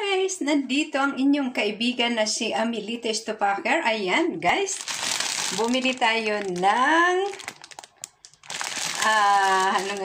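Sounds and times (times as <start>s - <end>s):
plastic bag crinkling: 4.5s - 10.0s.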